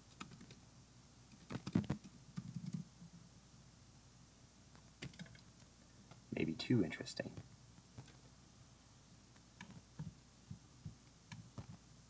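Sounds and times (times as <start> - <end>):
typing on laptop keyboard: 0.1 - 0.6, 1.3 - 2.9, 5.0 - 5.5, 9.6 - 10.2.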